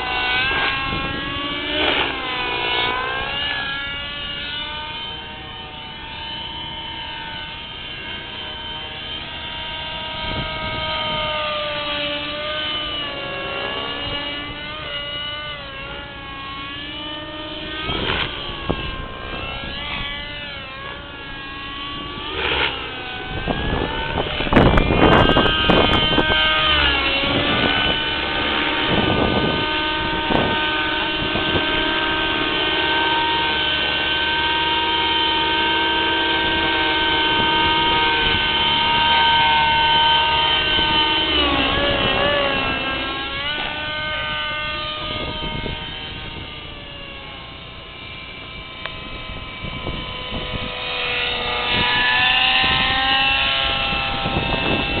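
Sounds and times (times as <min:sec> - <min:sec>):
model helicopter engine and rotor: 0:00.0 - 0:55.0.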